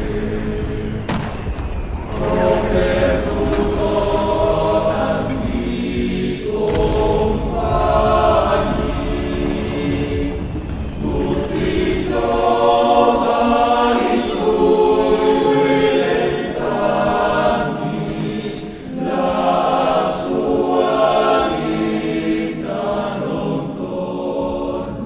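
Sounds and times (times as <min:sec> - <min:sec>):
choir singing long notes: 0:00.0 - 0:25.0.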